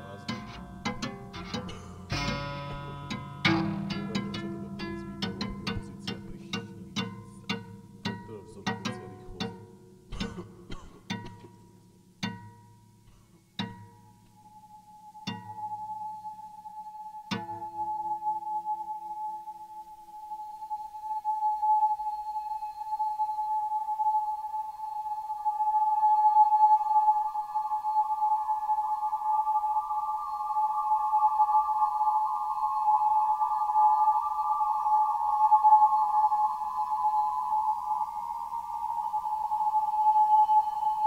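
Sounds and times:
wineglass rim high tone: 0:00.0 - 0:11.6, 0:20.5 - 0:41.0
guitar note ringing: 0:00.0 - 0:16.1.

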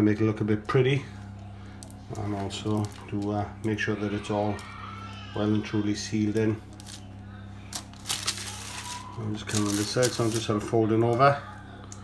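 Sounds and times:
steady low hum: 0:00.0 - 0:12.0
plastic sheet crinkling: 0:01.7 - 0:03.8, 0:06.7 - 0:11.2.

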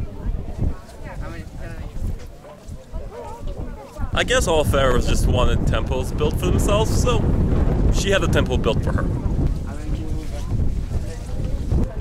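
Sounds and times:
faint voices: 0:00.0 - 0:07.3, 0:07.9 - 0:12.0
wind buffeting microphone: 0:00.0 - 0:12.0.

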